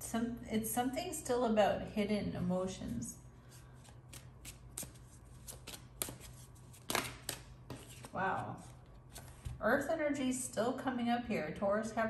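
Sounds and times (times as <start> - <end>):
cards being shuffled: 3.8 - 9.6.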